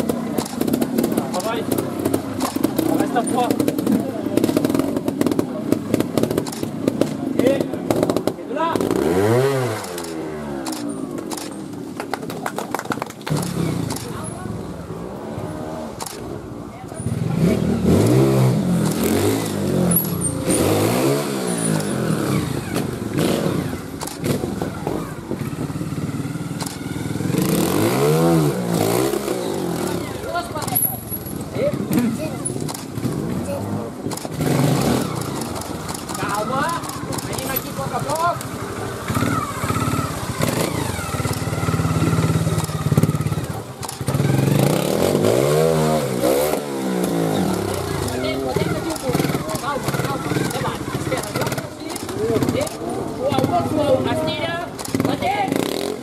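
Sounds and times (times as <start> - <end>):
motorcycle engines revving: 0.0 - 56.0
camera shutter clicks: 9.8 - 11.5, 16.0 - 16.2, 24.0 - 24.2.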